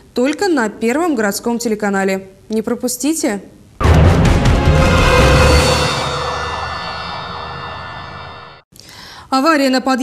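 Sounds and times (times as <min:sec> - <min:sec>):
siren-like sound effect: 0:03.8 - 0:08.6.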